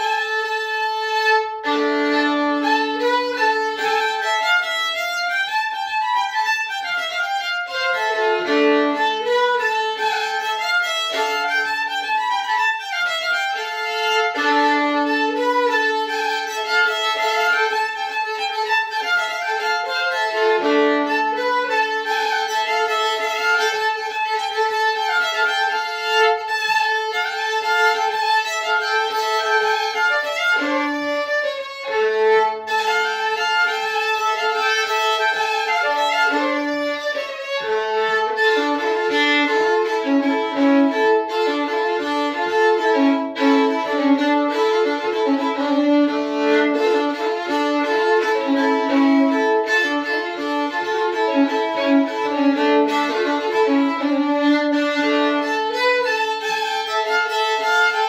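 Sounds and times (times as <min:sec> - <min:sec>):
solo fiddle folk melody: 0:00.0 - 0:58.0.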